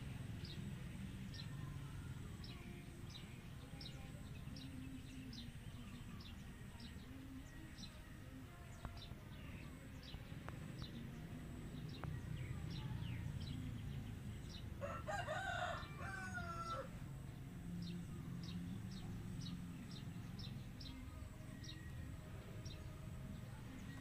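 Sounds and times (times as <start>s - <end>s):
rooster crowing: 14.8s - 17.0s.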